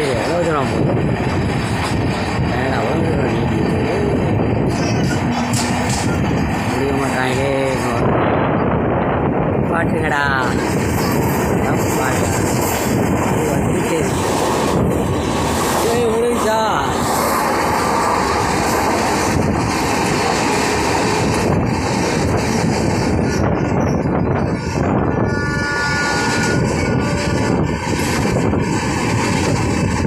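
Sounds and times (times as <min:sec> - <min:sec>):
train coaches rail rumble: 0:00.0 - 0:30.0
wheels clacking over rail joints: 0:04.6 - 0:06.8, 0:17.5 - 0:22.8
brief wavering tone: 0:24.4 - 0:27.6.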